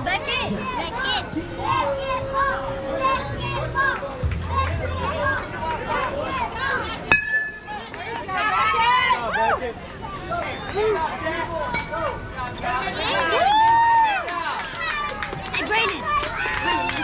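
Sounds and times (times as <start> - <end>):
kids and adults calling out: 0.0 - 14.1
metal bat hitting ball: 7.1 - 7.8.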